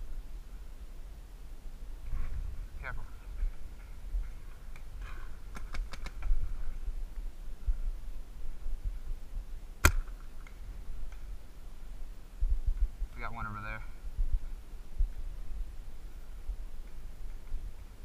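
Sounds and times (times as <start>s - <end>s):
paintball markers firing: 9.8s - 10.2s.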